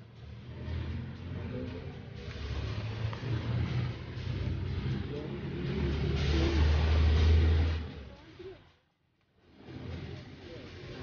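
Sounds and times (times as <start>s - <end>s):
road traffic rumble: 0.0s - 8.7s, 9.4s - 11.0s
vehicles passing close by: 0.0s - 8.7s, 9.4s - 11.0s.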